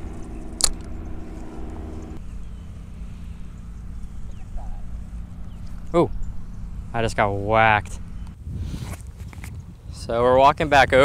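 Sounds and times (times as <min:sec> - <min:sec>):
steady low hum: 0:00.0 - 0:08.5
wind rumbling on microphone: 0:00.0 - 0:11.0
sharp click: 0:00.5 - 0:00.9.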